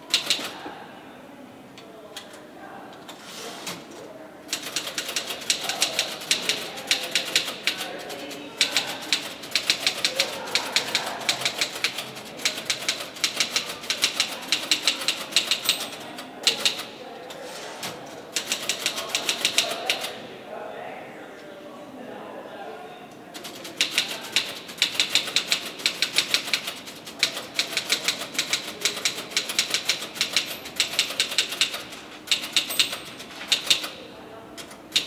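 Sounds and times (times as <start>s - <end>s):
fast typing on a keyboard: 0.1s - 0.5s, 4.5s - 16.9s, 18.4s - 20.1s, 23.4s - 34.0s, 34.6s - 35.0s.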